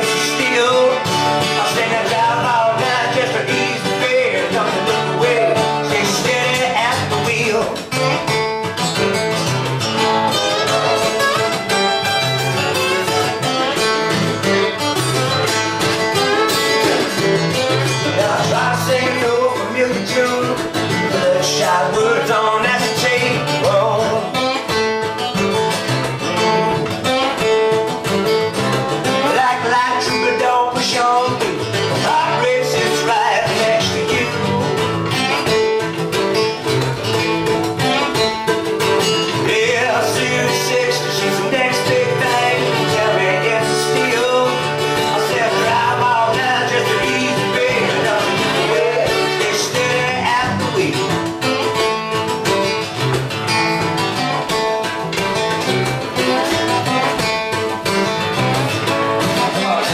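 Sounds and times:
acoustic guitars strumming: 0.0s - 59.9s.

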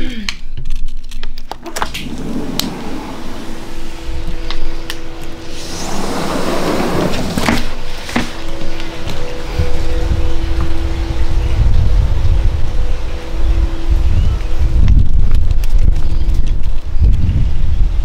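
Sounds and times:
steady low hum: 1.6s - 16.2s
wind buffeting microphone: 1.6s - 18.0s.

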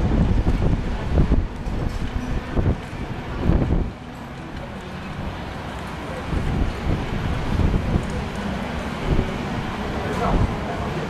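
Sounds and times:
wind buffeting microphone: 0.0s - 11.0s
distant racing kart engines: 0.2s - 11.0s.

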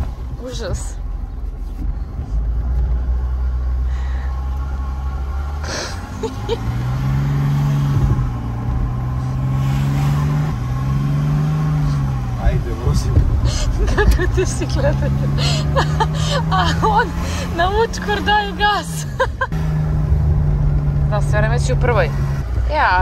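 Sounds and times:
car engine revving: 0.0s - 23.0s.

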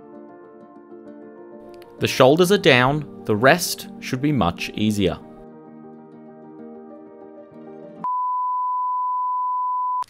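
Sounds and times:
steady test tone beep: 8.0s - 10.0s.

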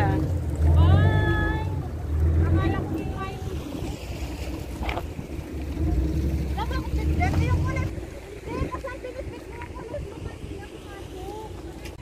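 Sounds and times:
people talking: 0.0s - 4.2s, 5.8s - 12.0s
boat engine rumbling: 0.0s - 12.0s.

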